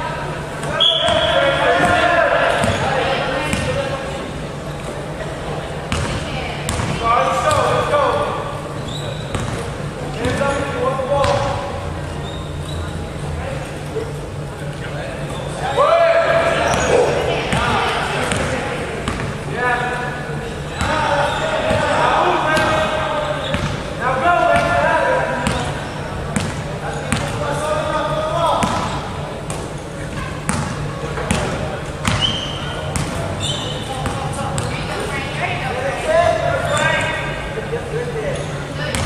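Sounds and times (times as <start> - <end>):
players shouting: 0.7 - 3.5, 15.5 - 18.8.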